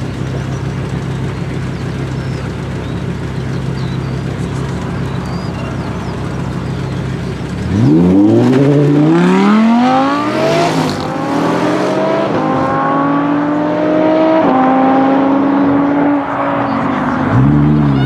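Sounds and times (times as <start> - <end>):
car engines revving and accelerating: 0.0 - 18.0.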